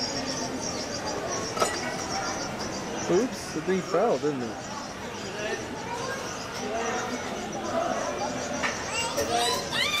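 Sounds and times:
children chattering: 0.0s - 10.0s
child's high-pitched voice: 8.9s - 10.0s.

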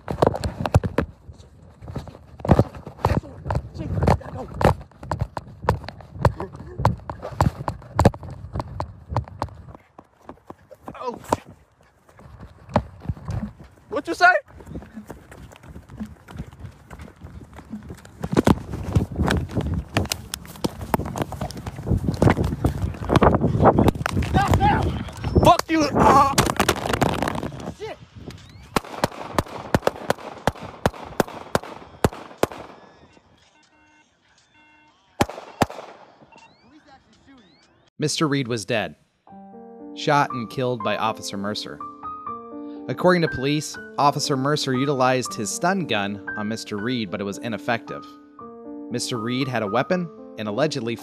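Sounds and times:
microphone rubbing on clothing: 0.0s - 13.9s, 14.6s - 25.4s
running footsteps thudding: 0.0s - 25.5s
handgun shots: 28.8s - 33.1s, 35.2s - 36.2s.

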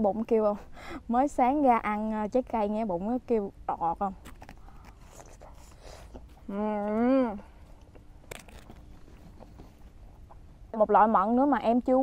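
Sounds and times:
biting into crisp fruit: 4.2s - 10.5s.

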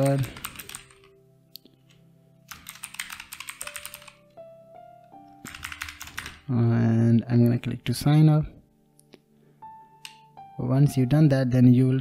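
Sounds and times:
computer keyboard typing: 0.0s - 1.1s, 2.5s - 4.3s, 5.4s - 6.5s
soft background music: 0.0s - 12.0s.

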